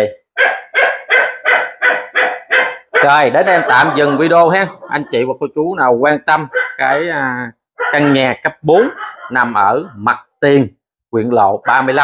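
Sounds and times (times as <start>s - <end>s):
dog barking loudly: 0.3s - 5.2s, 6.4s - 7.2s, 7.8s - 10.1s, 11.6s - 12.0s.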